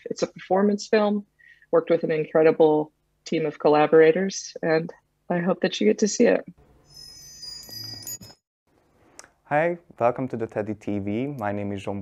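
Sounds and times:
high ringing chimes: 6.6s - 8.4s.

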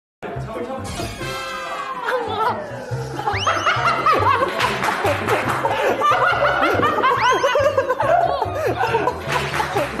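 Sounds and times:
young men laughing: 1.9s - 10.0s.

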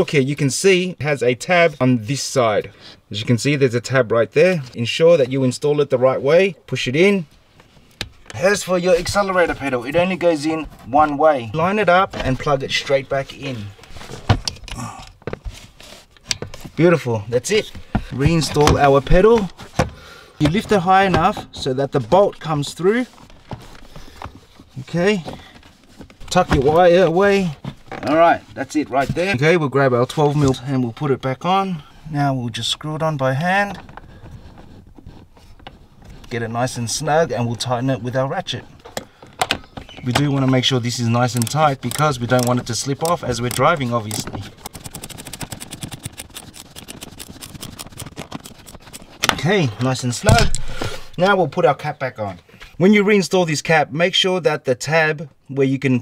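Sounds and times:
hand ratchet clicking: 41.3s - 48.0s.

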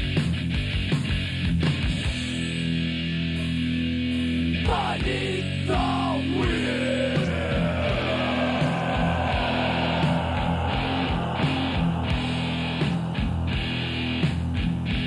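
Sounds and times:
bass and drums: 0.0s - 15.0s
distorted electric guitar riffing: 0.0s - 15.0s.

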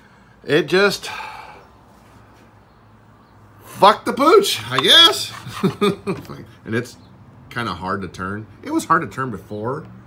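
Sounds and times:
man's breathy voice: 0.2s - 1.8s.

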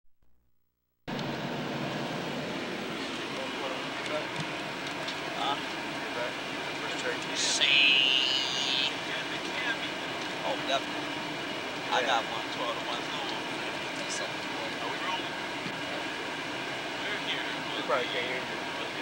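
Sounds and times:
airliner cabin noise: 1.1s - 19.0s
faint passenger voices: 2.8s - 4.5s, 5.1s - 19.0s.

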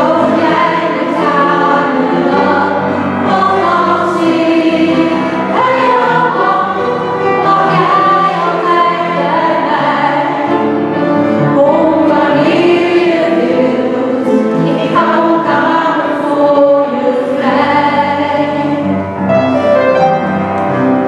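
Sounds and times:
mixed choir singing: 0.0s - 19.1s
piano accompaniment: 0.0s - 21.0s.

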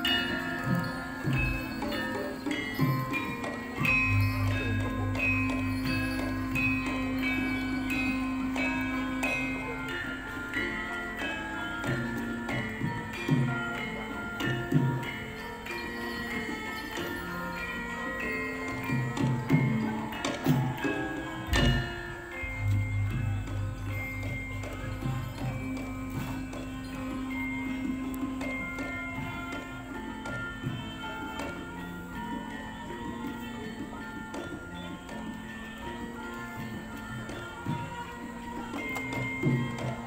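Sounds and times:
metallophones ringing notes: 0.0s - 40.0s.

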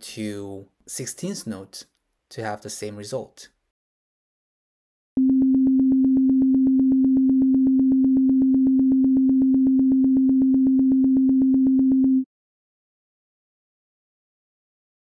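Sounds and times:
steady synthetic tone: 5.2s - 12.2s.

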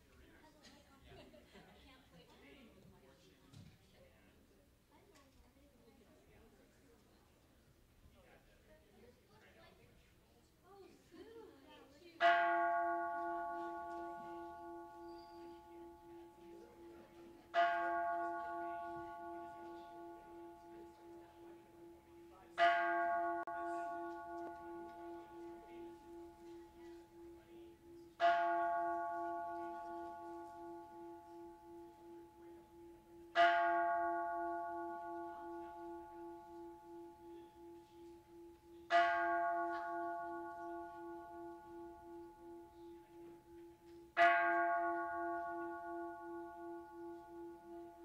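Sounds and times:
temple bell ringing: 12.2s - 48.0s
wavering bell hum: 13.4s - 17.1s.

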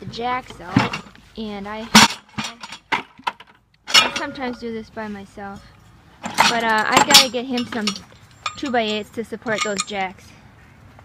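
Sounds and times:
metal stands clanking together: 0.4s - 1.2s, 1.8s - 4.8s, 6.2s - 10.1s.

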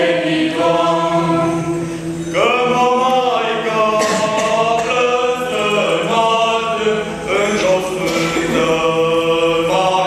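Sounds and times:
mixed choir singing unaccompanied: 0.0s - 10.0s.

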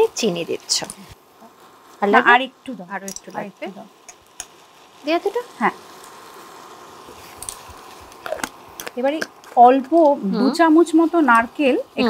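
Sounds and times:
woman's voice: 0.0s - 1.1s, 2.0s - 3.9s, 5.0s - 5.8s, 9.0s - 12.0s
kitchen background noise: 0.0s - 12.0s.

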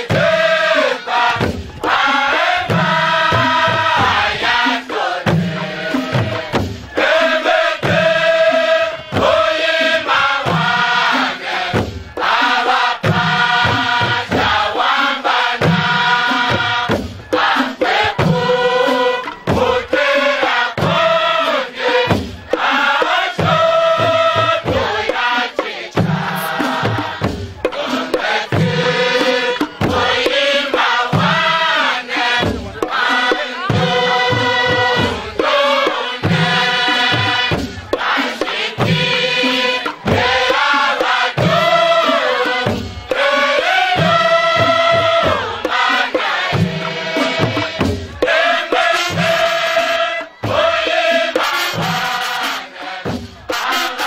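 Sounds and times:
crowd singing chant-like song: 0.0s - 54.0s.

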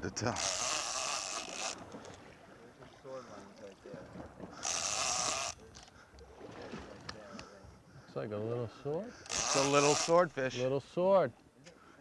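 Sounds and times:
water splashing against boat: 0.0s - 10.6s.

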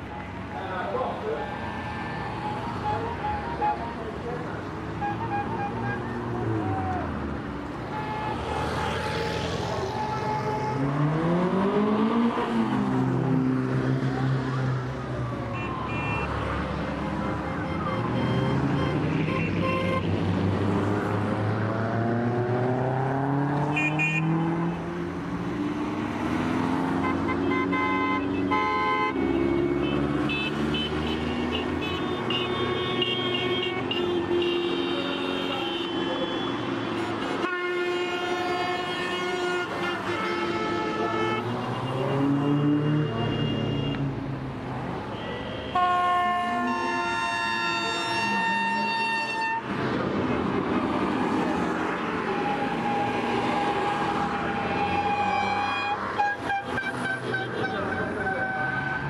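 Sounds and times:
car engines revving: 0.0s - 59.0s
car horns tooting: 4.9s - 7.0s, 7.8s - 9.2s, 15.5s - 20.1s, 23.6s - 24.7s, 26.8s - 44.1s, 45.1s - 49.8s, 52.0s - 59.0s.

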